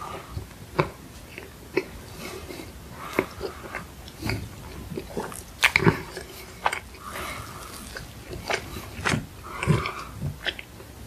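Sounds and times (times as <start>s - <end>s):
chewing with mouth smacks: 0.0s - 11.0s.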